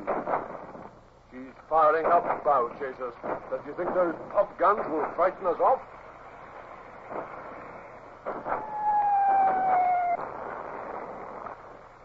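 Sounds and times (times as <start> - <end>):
cannon shots: 0.0 - 0.9, 1.9 - 5.7, 7.1 - 11.7
wind hiss: 0.0 - 12.0
falling whistle: 8.5 - 10.2.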